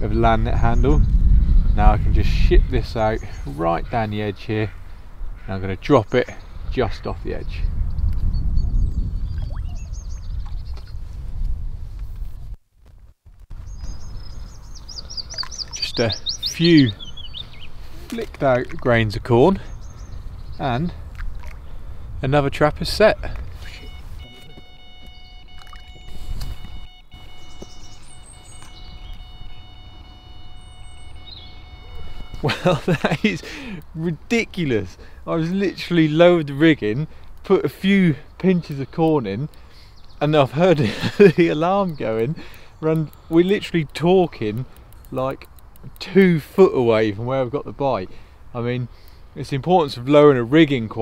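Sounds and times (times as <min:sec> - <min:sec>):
wind rumble on microphone: 0:00.0 - 0:04.0, 0:04.7 - 0:24.6, 0:25.4 - 0:32.5
small birds chirping: 0:00.0 - 0:11.0, 0:13.5 - 0:22.4, 0:23.0 - 0:50.9
microphone handling noise: 0:22.8 - 0:29.9, 0:31.1 - 0:32.6
bite alarm continuous tone: 0:23.6 - 0:38.0.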